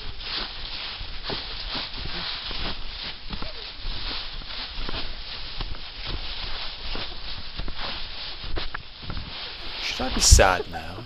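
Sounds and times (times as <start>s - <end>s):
feet kicking through dry leaves: 0.0s - 11.0s.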